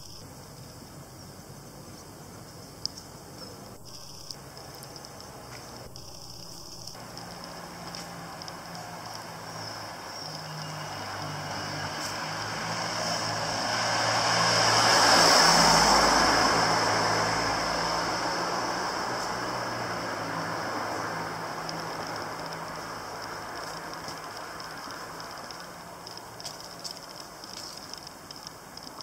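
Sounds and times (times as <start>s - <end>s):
vehicle passing by: 7.0s - 28.0s.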